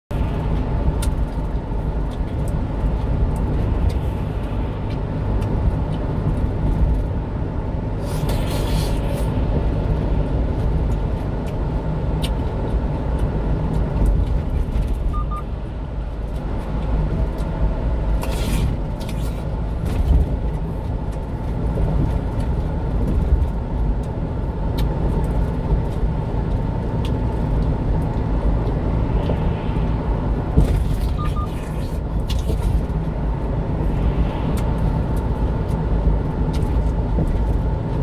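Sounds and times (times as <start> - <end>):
truck engine and road noise: 0.1 - 38.0
short faint beeps: 15.1 - 15.5, 31.1 - 31.7.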